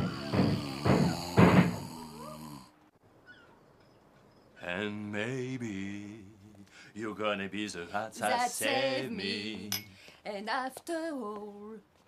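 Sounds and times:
person moaning: 0:00.0 - 0:02.8
rhythmic vocal grunts: 0:00.0 - 0:02.8.

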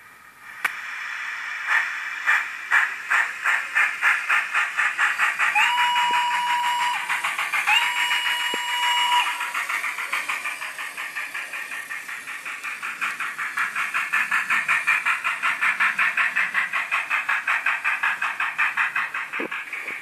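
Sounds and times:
rhythmic steam chuffs: 0:00.0 - 0:20.0
steam whistle blasts: 0:05.5 - 0:07.1, 0:07.7 - 0:09.4.

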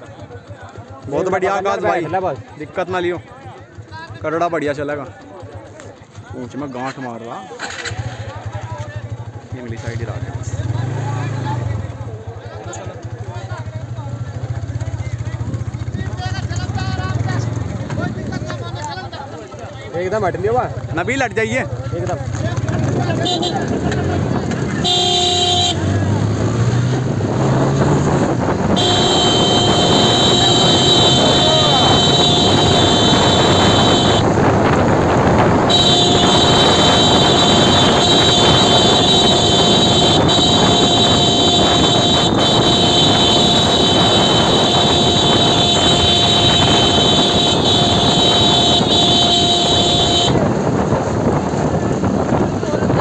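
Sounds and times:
motorcycle engines running: 0:00.0 - 0:53.0
road noise: 0:00.0 - 0:53.0
motorcycle horn: 0:23.1 - 0:24.0, 0:24.7 - 0:26.2, 0:28.5 - 0:50.6.

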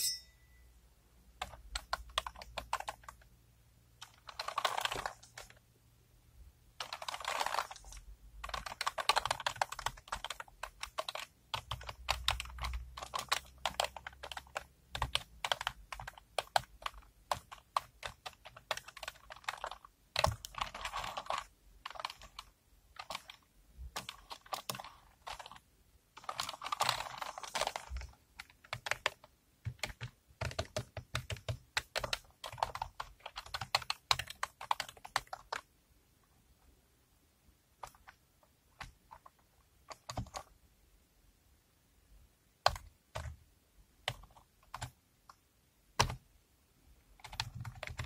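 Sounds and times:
laptop keyboard typing: 0:01.4 - 0:03.3, 0:04.0 - 0:05.6, 0:06.8 - 0:35.7, 0:37.8 - 0:38.2, 0:38.8 - 0:40.5, 0:42.6 - 0:43.4, 0:44.0 - 0:45.4, 0:46.0 - 0:46.2, 0:47.2 - 0:48.0.

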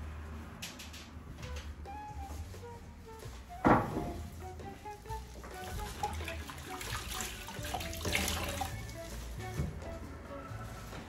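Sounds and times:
soft background music: 0:00.0 - 0:11.0
tap water running into sink: 0:05.5 - 0:08.8.

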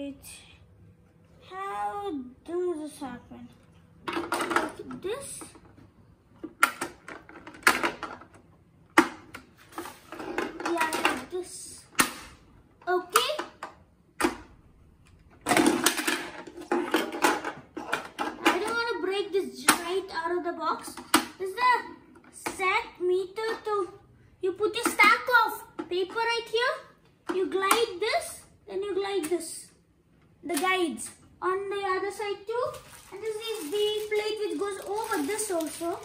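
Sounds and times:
boy talking: 0:00.0 - 0:00.6, 0:01.4 - 0:03.7, 0:04.5 - 0:05.6, 0:10.6 - 0:12.0, 0:12.8 - 0:13.6, 0:18.4 - 0:29.8, 0:30.4 - 0:36.0.

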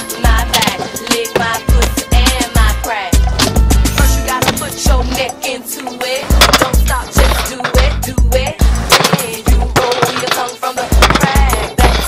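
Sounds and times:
skateboard wheels rolling on concrete: 0:00.0 - 0:05.3
music with heavy bass beat: 0:00.0 - 0:12.0
skateboard clacking against ledges: 0:09.0 - 0:12.0.

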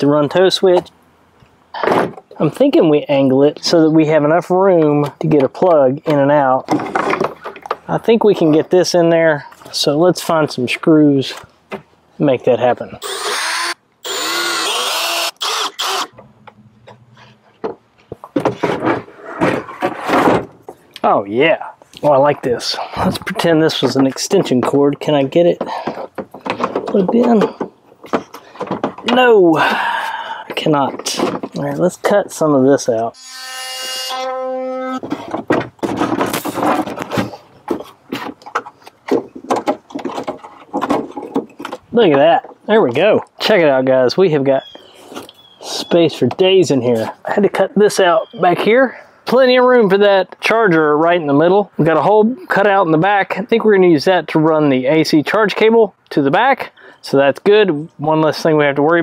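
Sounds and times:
knocks and handling noises: 0:04.7 - 0:08.6, 0:16.2 - 0:21.0, 0:25.5 - 0:29.4, 0:30.4 - 0:32.2, 0:34.6 - 0:43.4
cordless drill driving screws: 0:13.0 - 0:16.2
power tool buzzing: 0:13.0 - 0:16.4, 0:33.2 - 0:35.1
rustling: 0:34.8 - 0:42.0.

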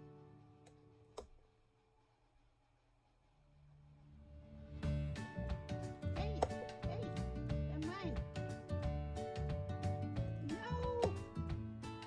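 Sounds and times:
background music with steady beat: 0:04.4 - 0:12.0.

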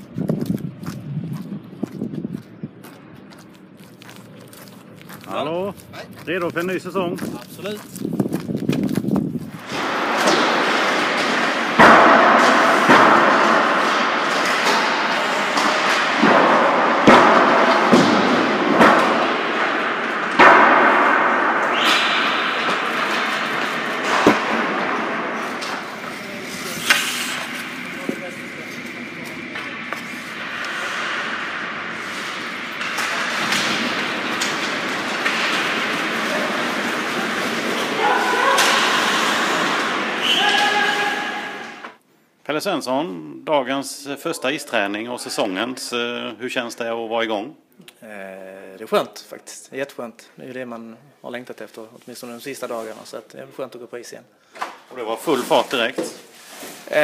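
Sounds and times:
skate blades scraping ice: 0:03.4 - 0:20.5, 0:21.6 - 0:41.8, 0:55.3 - 0:57.0
sticks striking pucks: 0:09.6 - 0:42.0
indistinct shouting voices: 0:36.1 - 0:41.8.

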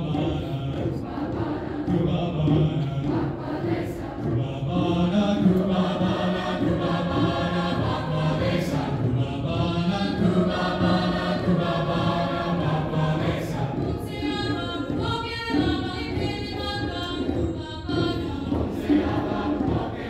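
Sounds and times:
choir singing sustained chords: 0:00.0 - 0:15.6, 0:17.9 - 0:20.0.

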